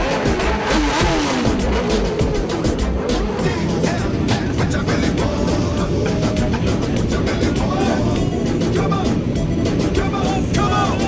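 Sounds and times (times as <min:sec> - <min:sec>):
hip-hop music with bass beat: 0:00.0 - 0:11.0
motorcycle engines revving: 0:00.0 - 0:11.0.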